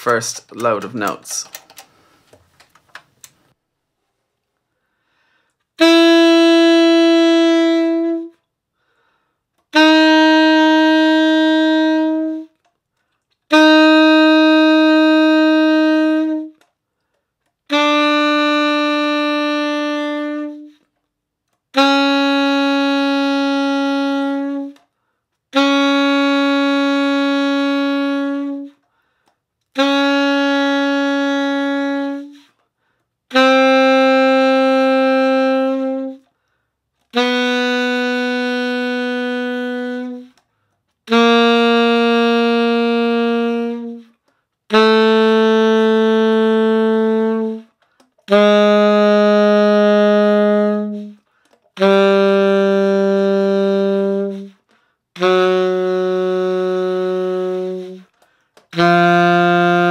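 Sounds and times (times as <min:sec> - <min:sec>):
saxophone long held notes: 0:05.8 - 0:08.5, 0:09.6 - 0:12.7, 0:13.5 - 0:16.8, 0:17.7 - 0:20.9, 0:21.7 - 0:24.9, 0:25.5 - 0:32.6, 0:33.3 - 0:36.3, 0:37.0 - 0:40.5, 0:41.1 - 0:59.9.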